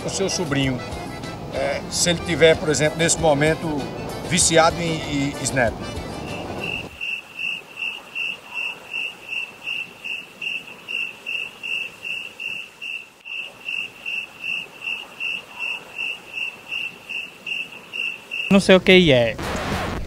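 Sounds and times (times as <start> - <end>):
cricket chirp sound effect: 6.6 - 18.7.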